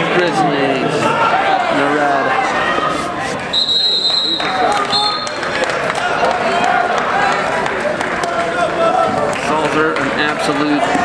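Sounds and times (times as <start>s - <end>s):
crowd chatter: 0.0s - 11.0s
referee's whistle blasts: 3.5s - 5.4s.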